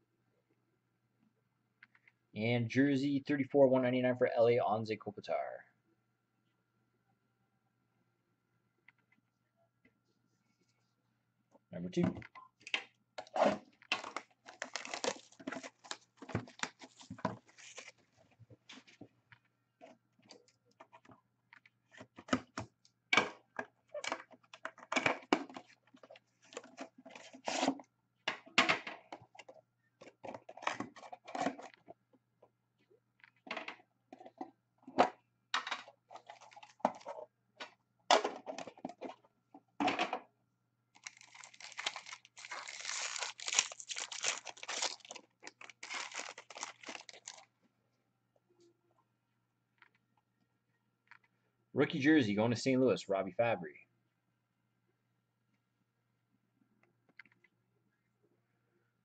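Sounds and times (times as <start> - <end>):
shrink wrap crinkling and tearing: 13.4 - 18.0, 36.1 - 37.1, 41.0 - 47.5.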